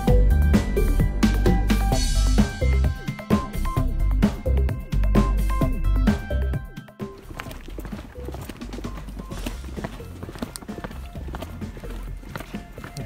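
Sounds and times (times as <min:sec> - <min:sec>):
footsteps on concrete: 0:02.3 - 0:03.7, 0:06.1 - 0:13.0
faint background music: 0:05.3 - 0:13.0.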